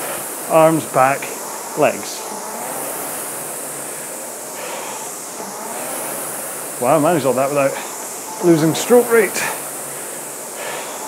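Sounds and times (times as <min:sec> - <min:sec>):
rowing machine flywheel whirring: 0:00.0 - 0:11.0.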